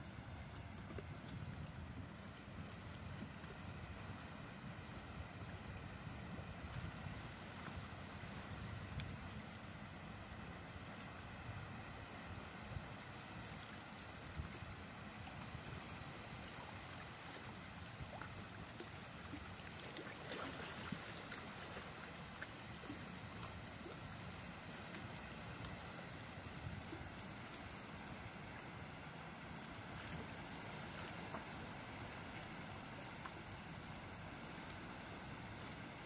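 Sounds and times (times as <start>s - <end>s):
wind rumbling on microphone: 0.0s - 36.0s
water lapping against rocks: 0.1s - 36.0s
faint ticks: 8.9s - 9.7s, 20.8s - 35.8s.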